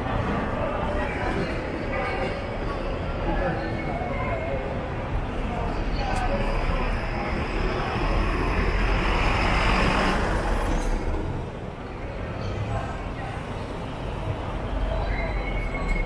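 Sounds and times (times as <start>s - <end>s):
bus engine and road noise: 0.0s - 16.0s.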